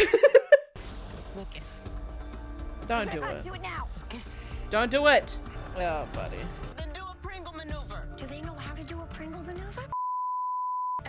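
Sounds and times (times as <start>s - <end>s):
background music: 0.0s - 10.0s
high-pitched censor beep: 9.9s - 11.0s.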